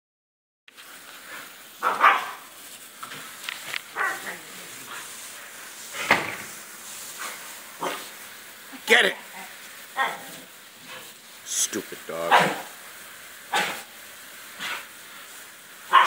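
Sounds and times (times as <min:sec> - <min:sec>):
garden hose spraying water: 0:00.7 - 0:16.0
dog yelping and barking: 0:01.8 - 0:02.5, 0:03.9 - 0:04.4, 0:12.3 - 0:12.7.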